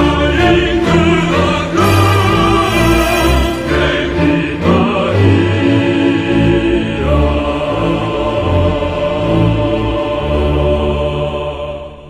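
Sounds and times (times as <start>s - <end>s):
choir holding a chord: 0.0s - 12.0s.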